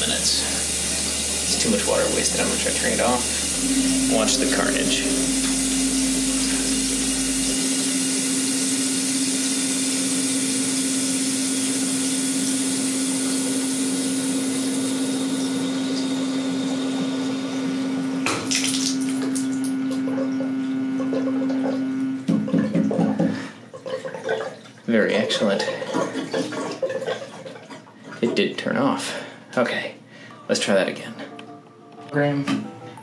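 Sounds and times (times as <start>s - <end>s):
valve motor hum: 0.0s - 22.3s
shower water running: 0.0s - 28.0s.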